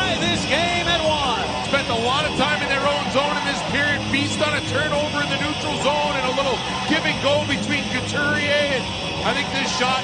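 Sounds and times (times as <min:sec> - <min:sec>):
arena crowd noise: 0:00.0 - 0:10.0
commentator speaking: 0:00.0 - 0:10.0.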